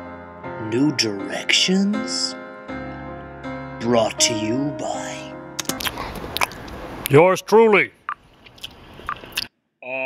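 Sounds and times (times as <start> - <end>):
man chanting a long note: 4.1 - 5.4
wet mouth noises: 5.6 - 6.8, 8.1 - 9.6.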